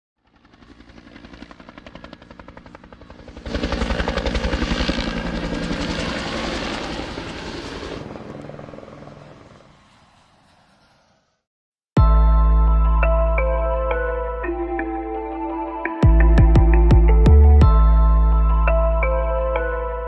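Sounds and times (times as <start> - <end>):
helicopter rotor blades chopping: 0.2 - 11.4.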